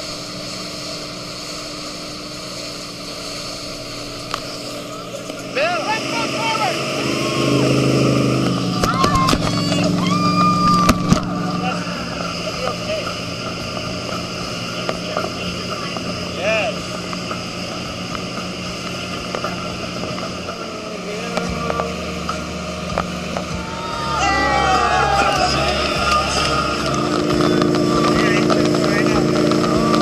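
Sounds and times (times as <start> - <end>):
boat engine running: 0.0 - 30.0
water rushing in wake: 0.0 - 30.0.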